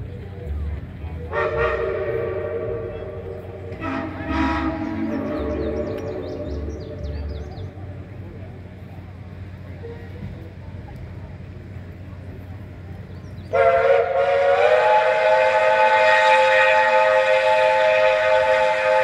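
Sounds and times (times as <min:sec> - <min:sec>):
steam locomotive whistle: 0:01.3 - 0:08.1, 0:13.5 - 0:19.0.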